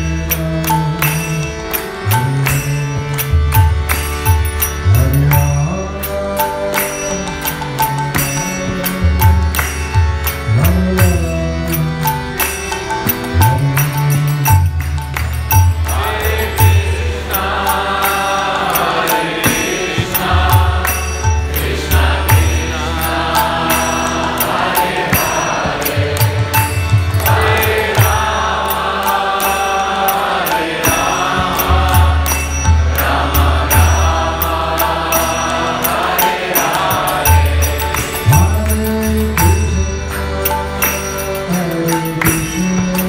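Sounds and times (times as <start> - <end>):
harmonium chords: 0.0 - 43.0
light percussion beat: 0.0 - 43.0.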